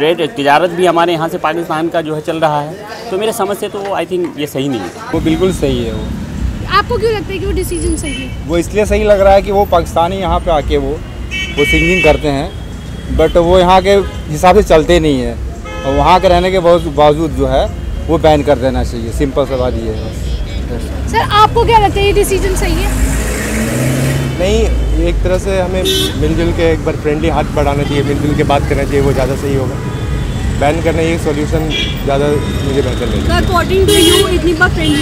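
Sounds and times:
man speaking: 0.0s - 6.1s, 24.4s - 29.8s
street traffic: 0.0s - 35.0s
vehicle horn: 11.3s - 12.4s, 15.6s - 16.8s, 25.8s - 26.3s, 31.7s - 32.1s, 33.6s - 35.0s.

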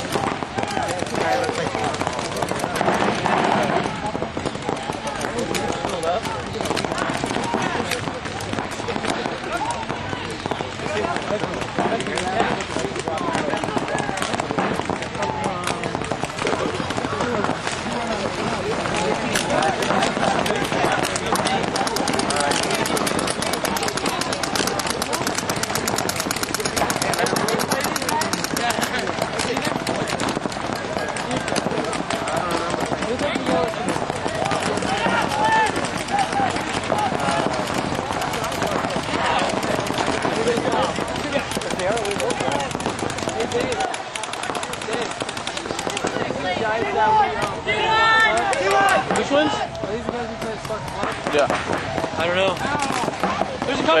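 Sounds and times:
paintball markers firing: 0.0s - 54.0s
people shouting: 12.5s - 54.0s.

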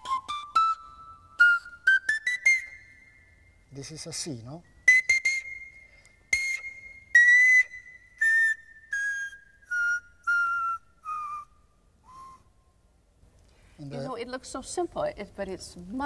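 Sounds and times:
pan flute descending scale: 0.0s - 3.2s, 4.9s - 12.6s.

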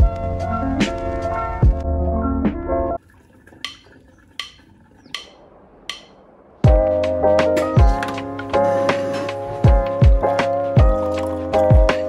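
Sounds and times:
background music with bass thump: 6.6s - 12.0s.

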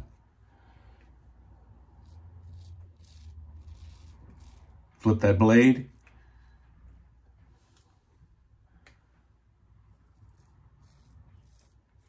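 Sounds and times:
razor scraping stubble: 1.8s - 6.6s, 9.8s - 12.0s.

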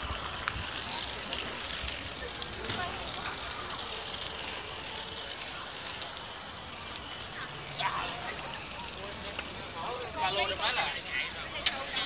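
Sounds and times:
chatter of passers-by: 0.0s - 12.0s
steady crowd noise: 0.0s - 12.0s.

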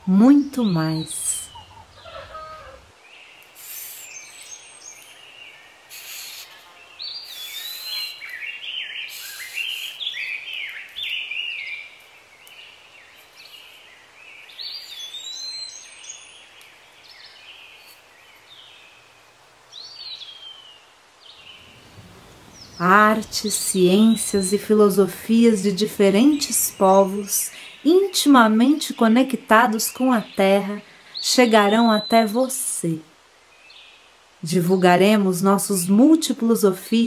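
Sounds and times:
birds singing: 0.0s - 32.6s, 33.4s - 37.0s
short hissy scratches: 3.5s - 4.4s, 5.9s - 8.2s, 9.0s - 10.2s.

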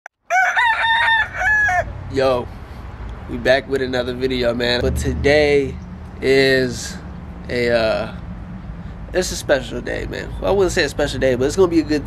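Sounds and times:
rooster crowing: 0.2s - 2.0s.

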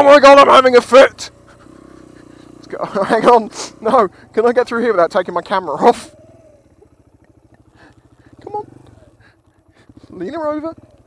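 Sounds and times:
motorcycle engine puttering: 0.0s - 11.0s.

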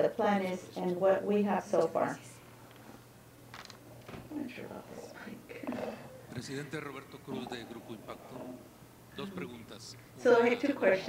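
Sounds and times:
low indistinct voices: 4.3s - 11.0s.

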